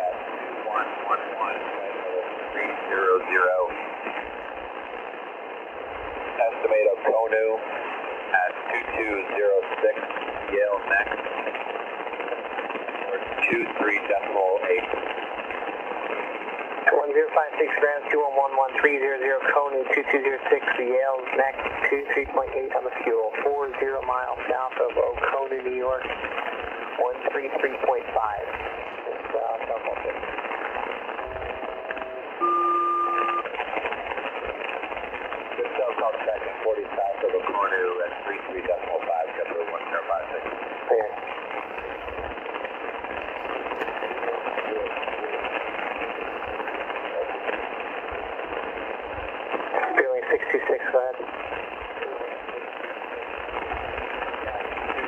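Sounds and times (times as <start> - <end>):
garbled radio voices: 0.0 - 4.1, 6.2 - 11.2, 12.9 - 15.2, 16.7 - 48.8, 49.5 - 55.0
paired radio tones: 0.0 - 55.0
radio static hiss: 0.0 - 55.0.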